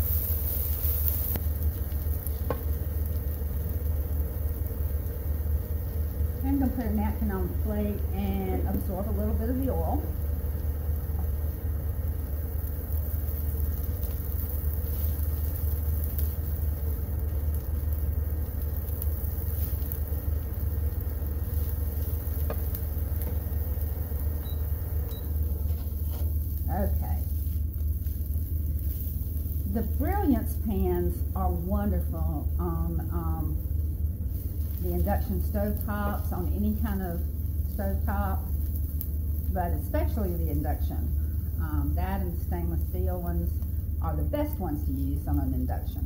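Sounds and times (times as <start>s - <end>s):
mushrooms frying in oil: 0.0s - 46.0s
steady low hum: 0.0s - 46.0s
spatula stirring and clicking: 10.2s - 29.6s.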